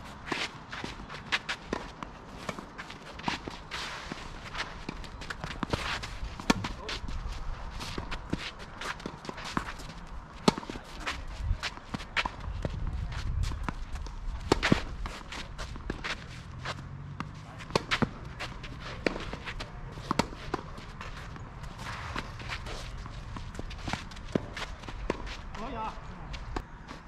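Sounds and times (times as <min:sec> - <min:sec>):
footsteps scuffing on clay court: 0:00.0 - 0:27.0
tennis ball struck by rackets: 0:04.8 - 0:07.0, 0:10.4 - 0:10.8, 0:13.6 - 0:25.3.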